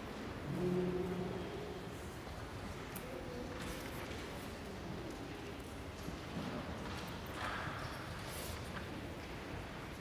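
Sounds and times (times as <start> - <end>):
church room hum: 0.0 - 10.0.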